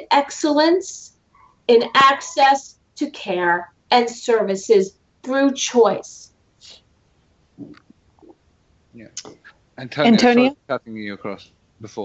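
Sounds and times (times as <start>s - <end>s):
person murmuring: 9.0s - 12.0s
person saying yeah: 9.0s - 12.0s.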